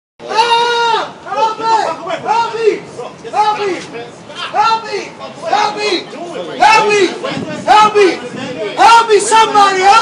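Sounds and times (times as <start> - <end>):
man screaming for help: 0.2 - 3.8, 8.8 - 10.0.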